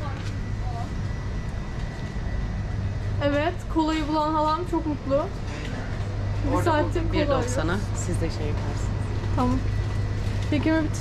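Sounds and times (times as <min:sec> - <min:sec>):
supermarket background hum: 0:00.0 - 0:11.0.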